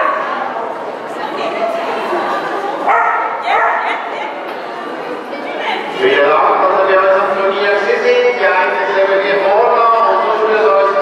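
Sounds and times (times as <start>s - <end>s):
background voices in hall: 0.0s - 11.0s
dog barking: 2.9s - 4.0s.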